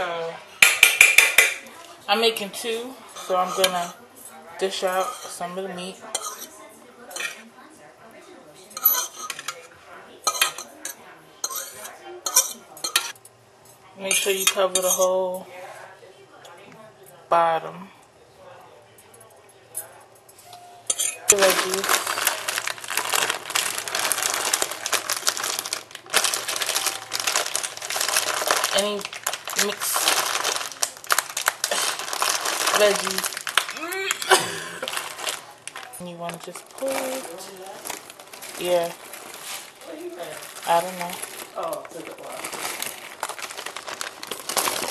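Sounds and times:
utensil clinking and scraping pan: 3.1 - 4.0, 4.7 - 6.5, 7.1 - 7.4, 8.8 - 9.7, 10.3 - 13.2
plastic packaging crinkling: 21.3 - 44.9.

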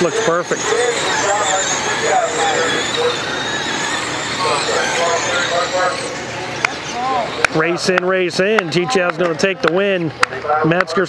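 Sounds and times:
rc car motors whining: 0.0 - 11.0
background voices: 0.2 - 9.4.

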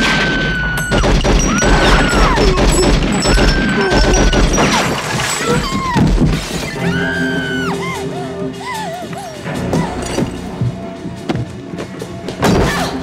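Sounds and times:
gunfire: 0.0 - 5.0
crashing and breaking: 0.0 - 6.8
film music: 0.0 - 13.0
woman screaming: 6.8 - 9.4.

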